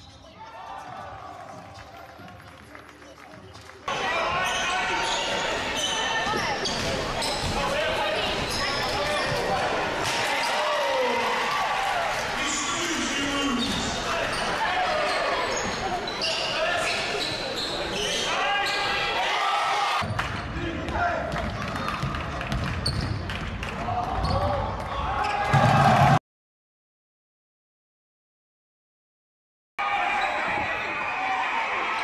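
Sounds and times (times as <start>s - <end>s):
basketball bouncing on court: 20.0s - 24.4s.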